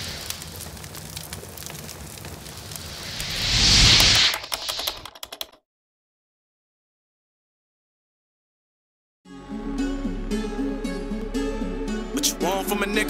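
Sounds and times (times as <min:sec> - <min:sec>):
dense crackling clicks: 0:00.0 - 0:05.6
whoosh: 0:02.8 - 0:05.1
run of sharp clicks: 0:03.2 - 0:05.6.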